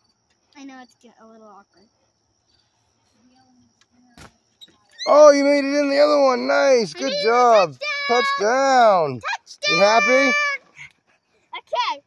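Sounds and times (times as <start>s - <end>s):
crickets trilling: 0.0s - 12.0s.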